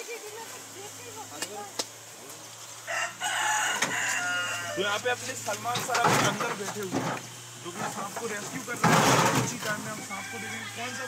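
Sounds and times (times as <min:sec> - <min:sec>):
rooster crowing: 0:02.8 - 0:05.0, 0:09.7 - 0:11.0.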